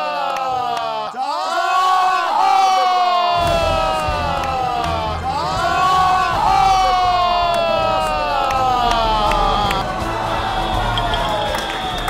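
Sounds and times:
onlookers shouting and cheering: 0.0s - 12.0s
low rumble: 3.4s - 10.8s.

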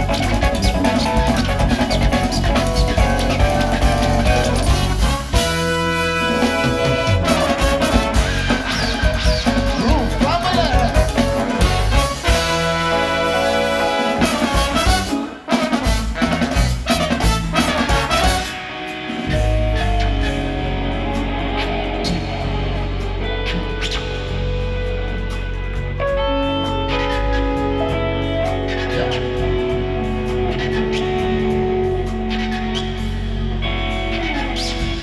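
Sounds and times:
drum kit and bass: 0.0s - 35.0s
horn section holding chords: 0.0s - 35.0s.

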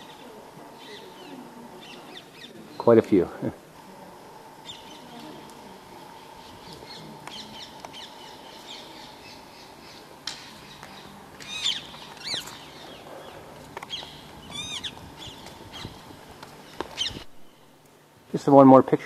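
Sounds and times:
birds chirping: 0.0s - 18.1s
faint outdoor background: 0.0s - 19.0s.

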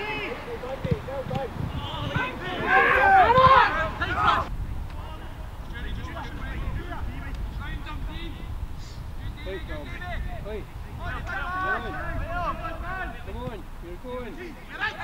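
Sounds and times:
players shouting: 0.0s - 8.4s, 9.3s - 15.0s
wind rumble on microphone: 0.8s - 14.3s.

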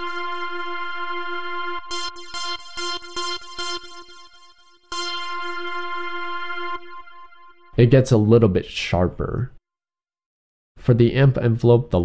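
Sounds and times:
high-pitched synth chords: 0.0s - 7.8s.

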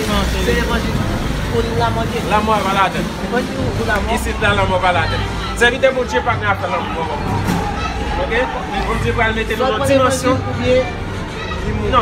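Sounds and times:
man talking: 0.0s - 7.4s, 8.2s - 11.0s.

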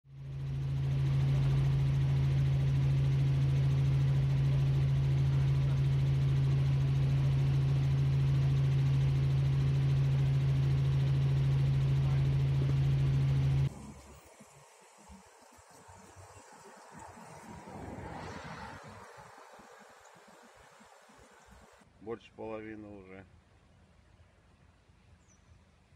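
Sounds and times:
helicopter cabin drone: 0.1s - 21.8s
quiet outdoor sound: 0.1s - 25.9s.

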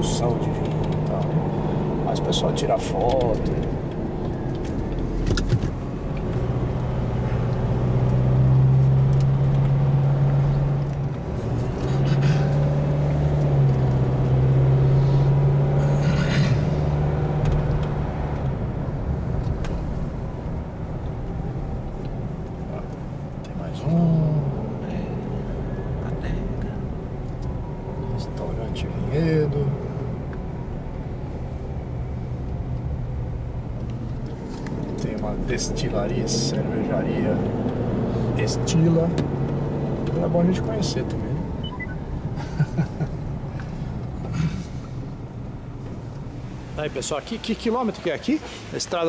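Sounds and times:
car engine drone: 0.0s - 49.0s
road noise inside car: 0.0s - 49.0s.

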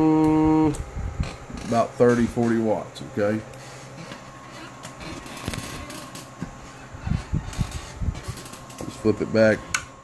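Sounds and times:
cooling fan hum: 0.0s - 10.0s.

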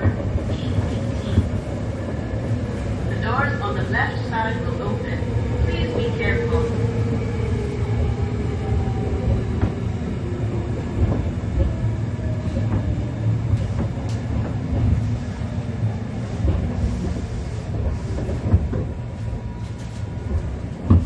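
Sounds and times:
rail clicks: 0.0s - 21.0s
train rumbling on rails: 0.0s - 21.0s.

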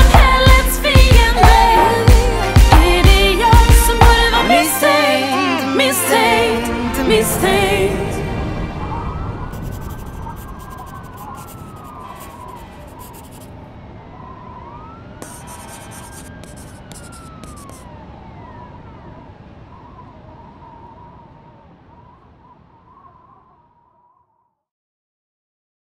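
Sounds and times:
distant siren wailing: 4.8s - 24.5s
low city rumble: 6.7s - 24.1s.

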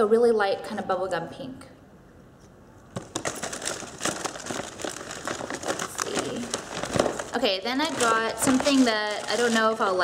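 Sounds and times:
packaging crinkling: 3.0s - 10.0s.

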